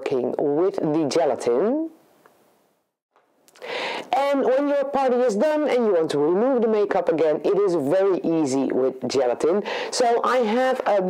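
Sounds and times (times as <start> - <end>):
faint room hiss: 0.0 - 11.0
breath drawn in: 3.6 - 4.1.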